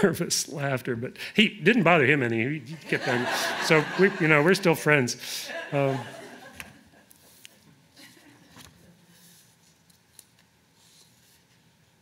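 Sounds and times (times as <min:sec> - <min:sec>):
book pages rustling: 0:08.4 - 0:11.7.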